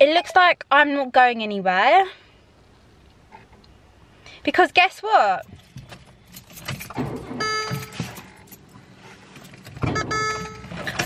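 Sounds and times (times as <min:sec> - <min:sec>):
car engine failing to start: 0:09.3 - 0:11.0.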